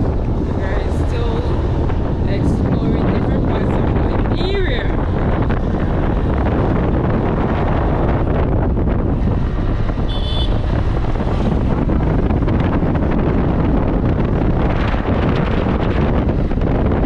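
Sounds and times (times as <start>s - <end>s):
motorcycle running: 0.0s - 17.0s
wind buffeting microphone: 0.0s - 17.0s.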